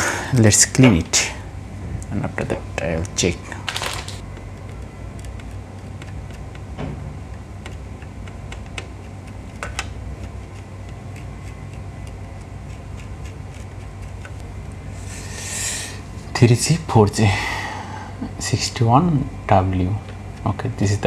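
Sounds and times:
steady low hum: 0:00.0 - 0:21.0
cotton swab scratching: 0:04.4 - 0:06.7, 0:07.3 - 0:15.5.

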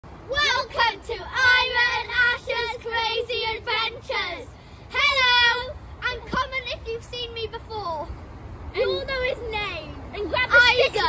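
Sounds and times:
child singing: 0:00.3 - 0:07.8.

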